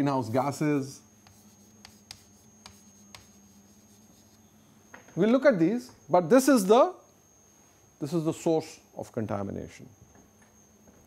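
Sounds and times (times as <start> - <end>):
chalk scratching on chalkboard: 0.7 - 4.4
chalk tapping on chalkboard: 1.2 - 4.4.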